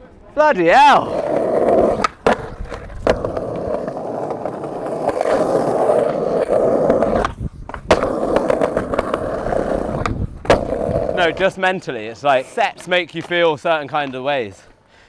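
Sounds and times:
skateboard clack: 0.0s - 14.6s
skateboard rolling over stone: 1.0s - 13.4s.

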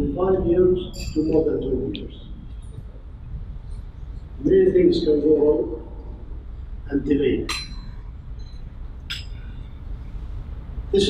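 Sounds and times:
low hum of hall room tone: 0.0s - 11.0s
tableware clinking: 0.9s - 1.5s, 7.5s - 9.7s.

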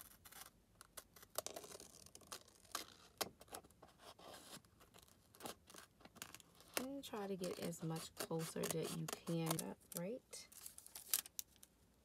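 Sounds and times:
scissors snipping paper: 5.4s - 11.4s.

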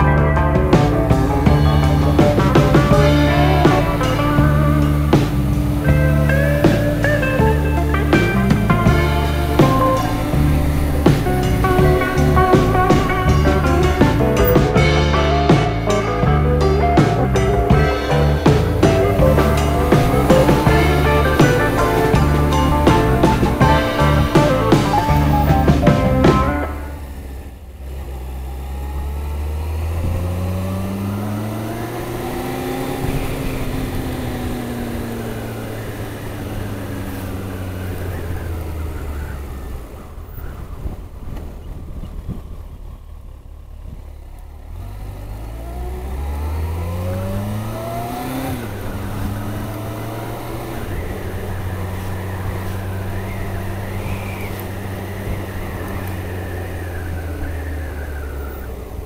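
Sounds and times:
motorcycle engine under way: 0.0s - 59.0s.

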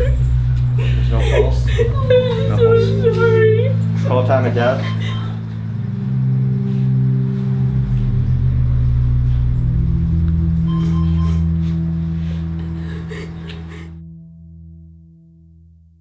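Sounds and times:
low drone chords: 0.0s - 15.8s.

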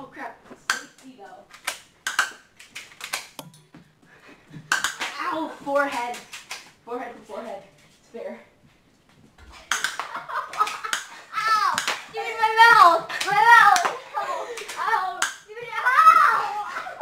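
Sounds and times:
airsoft pistol snaps: 1.6s - 3.6s
boy yelling: 11.3s - 17.0s.

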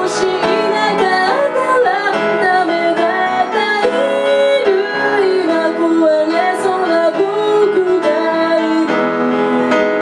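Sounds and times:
upright piano: 0.0s - 10.0s
woman singing: 0.0s - 10.0s.

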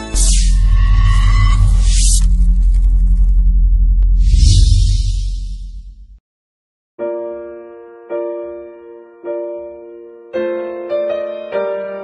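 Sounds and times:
deep bass drone: 0.0s - 6.2s.

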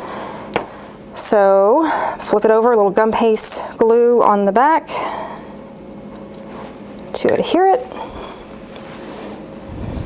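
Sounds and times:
sleeve rustling near microphone: 8.6s - 10.0s.

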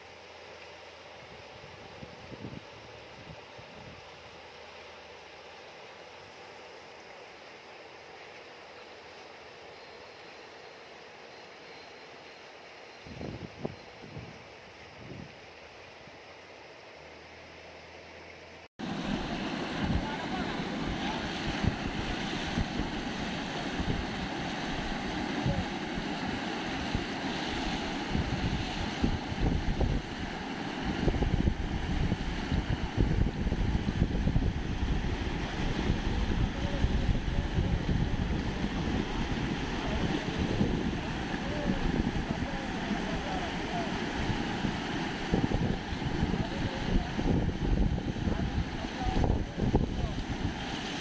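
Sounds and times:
wind buffeting microphone: 13.1s - 14.4s, 18.9s - 51.0s
floodwater rushing over road: 18.8s - 51.0s.

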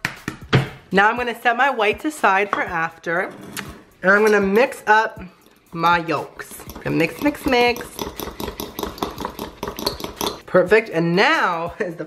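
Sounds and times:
fork whisking in ceramic bowl: 5.3s - 10.4s.

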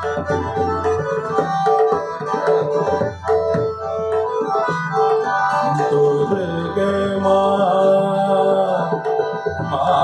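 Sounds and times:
harmonium: 0.0s - 10.0s
man singing classical vocals: 5.7s - 10.0s.

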